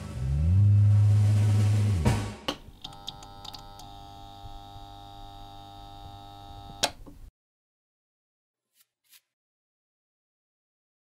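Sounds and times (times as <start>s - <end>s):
deep bass drone: 0.0s - 2.5s.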